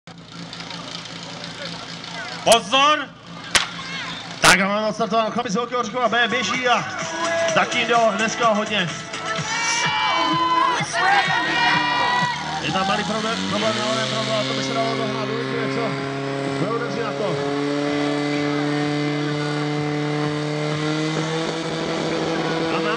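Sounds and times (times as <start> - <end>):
pump engine running at high revs: 0.1 - 22.9
people shouting: 3.4 - 4.4, 9.3 - 13.9.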